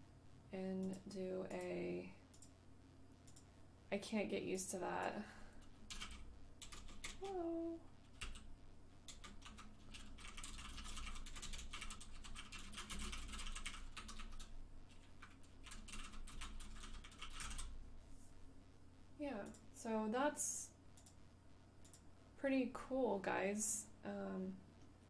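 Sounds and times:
computer keyboard typing: 5.9 - 7.4, 8.1 - 8.5, 9.1 - 17.7.

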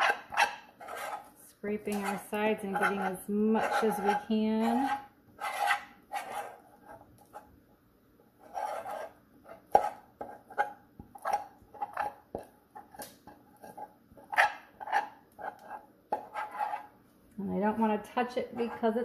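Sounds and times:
spoon scraping saucepan: 0.0 - 7.0, 8.4 - 12.2, 13.6 - 16.9, 18.2 - 19.0.

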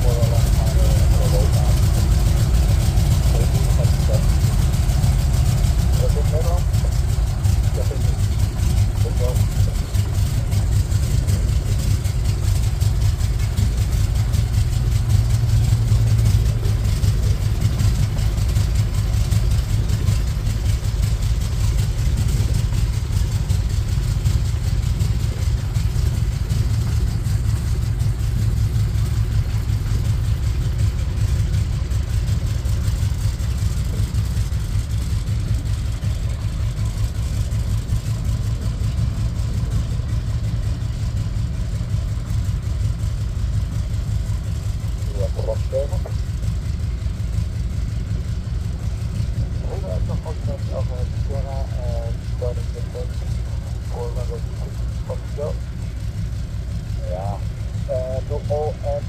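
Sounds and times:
radial aircraft engine idling: 0.0 - 59.0.

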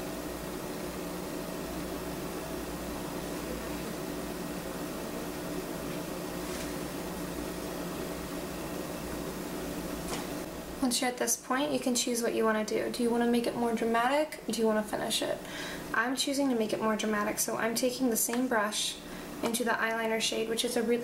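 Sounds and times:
steady background hum: 0.0 - 21.0.

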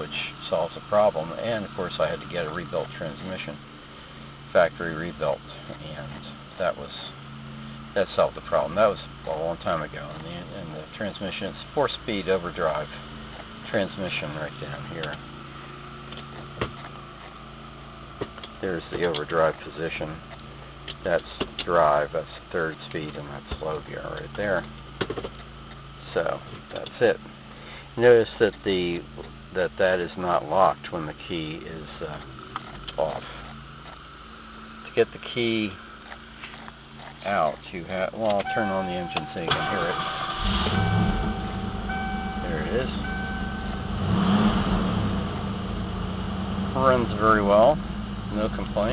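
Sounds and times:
car engine starting and idling: 0.0 - 48.9
steady low hum: 0.0 - 48.9
dashboard warning tone: 38.2 - 45.5.

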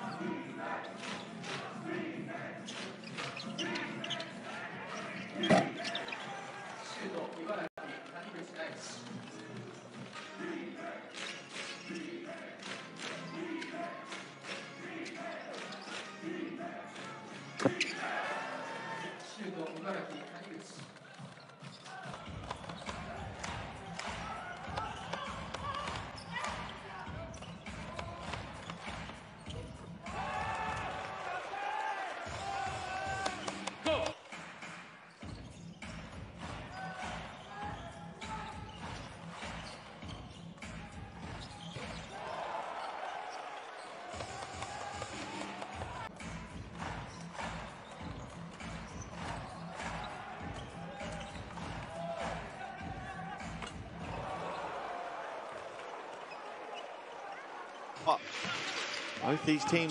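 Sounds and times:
voice carrying through hall: 58.0 - 59.9.

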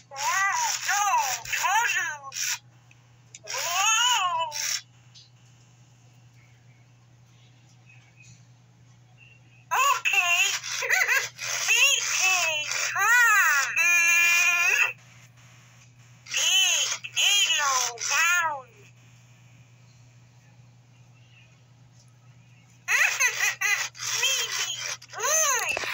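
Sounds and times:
toy babbling in electronic voice: 0.0 - 2.6, 3.4 - 4.9, 9.7 - 15.0, 16.3 - 18.9, 22.9 - 25.9.

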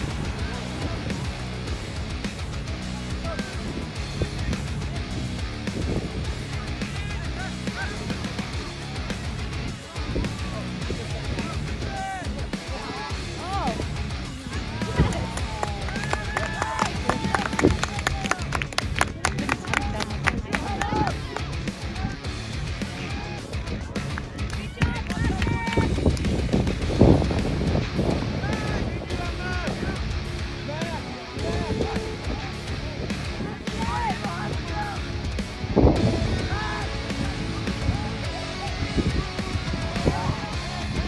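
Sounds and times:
people shouting: 0.0 - 3.8, 6.3 - 8.9, 9.8 - 18.6, 19.4 - 24.0, 24.6 - 26.0, 28.2 - 41.0
guitar music: 0.0 - 16.1, 25.5 - 41.0.

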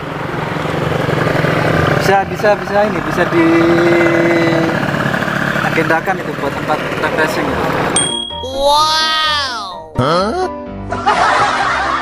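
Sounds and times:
engine running steadily: 0.0 - 8.2.

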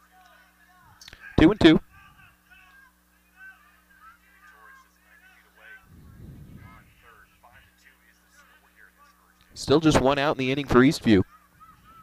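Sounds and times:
low rumble: 5.9 - 7.0.

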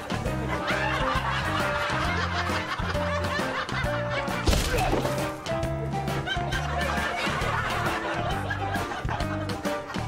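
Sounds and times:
light comic music: 0.0 - 10.0
laugh track chuckles: 6.1 - 10.0.

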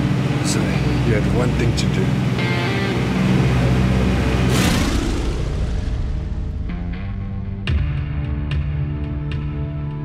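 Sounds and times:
propeller plane engines droning: 0.0 - 7.5
sudden rushing burst: 4.2 - 7.6.

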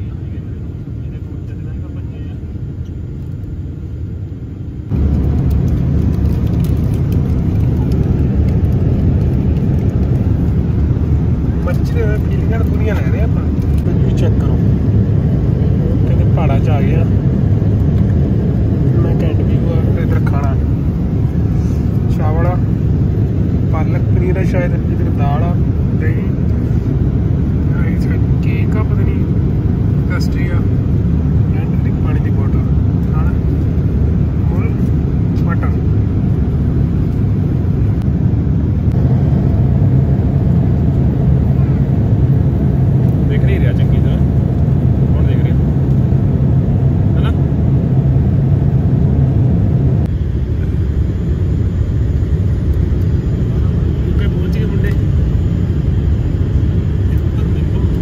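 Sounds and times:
airliner cabin rumble: 0.0 - 58.0.

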